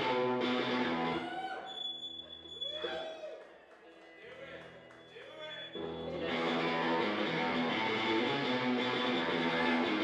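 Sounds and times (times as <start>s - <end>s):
guitar chords ringing: 0.0s - 1.2s, 6.1s - 10.0s
rock band playing live: 0.0s - 1.2s, 6.2s - 10.0s.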